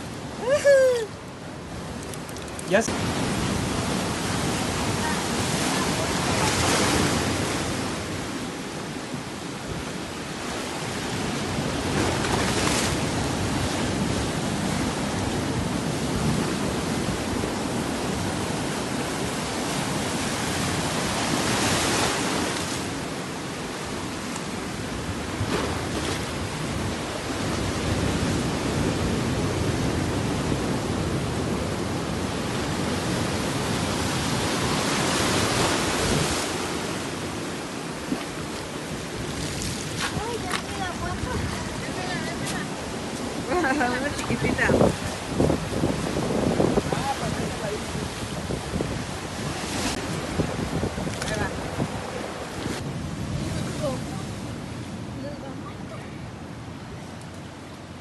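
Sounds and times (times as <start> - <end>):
surf breaking on rocks: 32.6 - 54.3.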